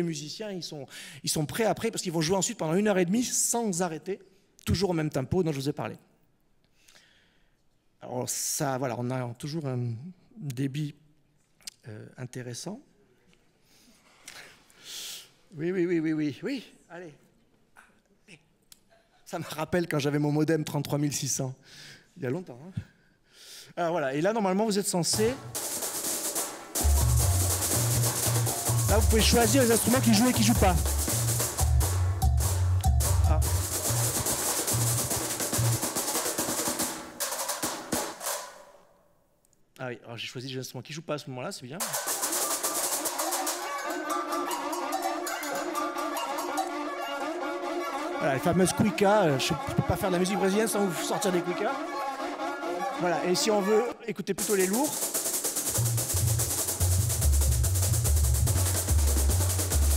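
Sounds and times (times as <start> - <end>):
deep drum beats: 25.2 - 38.3, 54.4 - 59.9
samba percussion over loudspeakers: 25.2 - 38.4, 41.8 - 46.8, 54.4 - 59.9.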